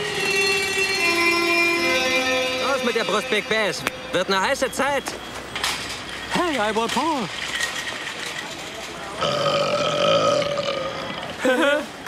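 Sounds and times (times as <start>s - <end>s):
man burping: 9.2s - 11.8s.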